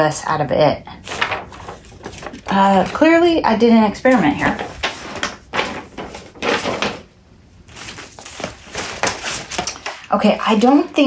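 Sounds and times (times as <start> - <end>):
paper rustling: 1.0 - 7.1, 7.7 - 11.0.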